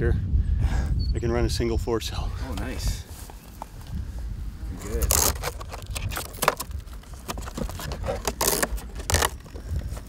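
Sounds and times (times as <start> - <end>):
plastic rattles: 5.0 - 10.0.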